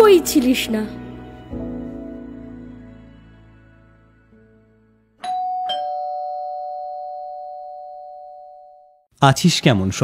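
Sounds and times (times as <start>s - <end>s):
two-tone doorbell chime: 5.2s - 9.0s.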